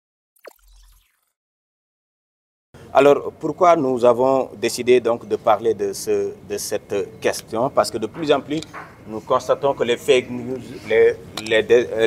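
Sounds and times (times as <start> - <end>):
falling plop tone: 0.4 - 1.3.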